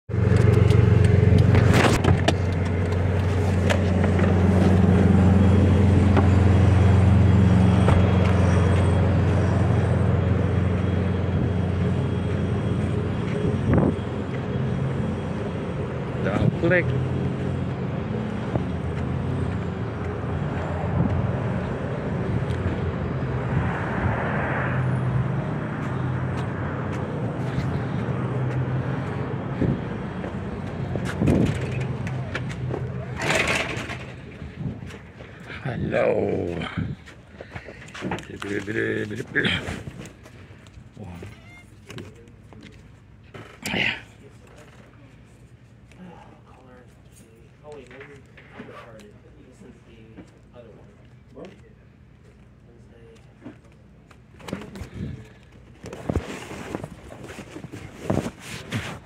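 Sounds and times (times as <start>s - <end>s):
outdoor background noise: 0.1s - 59.0s
vehicle engine humming: 0.1s - 59.0s.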